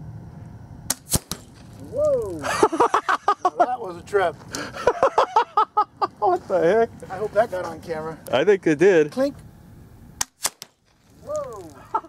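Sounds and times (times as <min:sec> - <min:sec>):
shotgun shot sharp cracks: 0:00.9 - 0:01.7, 0:10.2 - 0:10.9.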